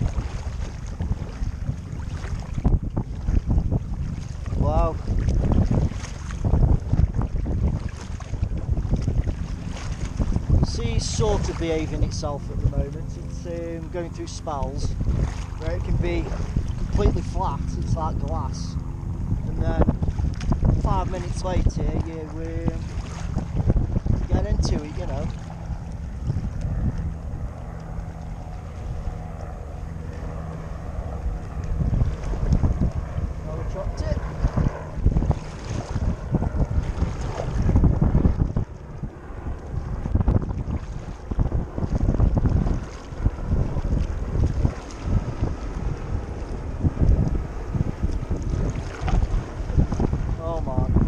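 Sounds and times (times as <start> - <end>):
water splashing from paddle strokes: 0.0 - 50.4
wind buffeting microphone: 0.0 - 51.0.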